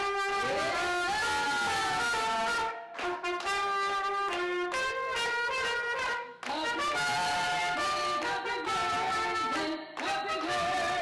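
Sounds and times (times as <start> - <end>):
mariachi trumpet melody: 0.0 - 11.0.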